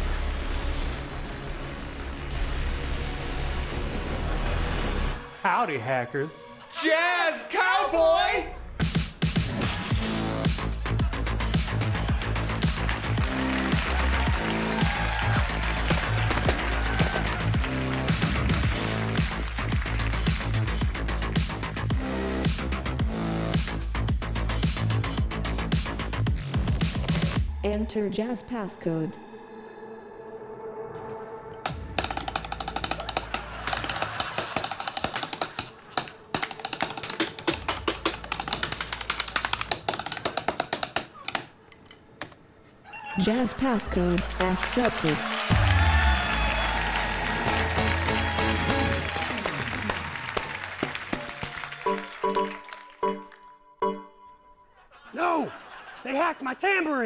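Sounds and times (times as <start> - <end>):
background music: 0.0 - 41.0, 43.2 - 57.0
background music with driving beat: 8.7 - 27.5, 45.0 - 53.3
fast typing on keyboard: 31.8 - 41.5.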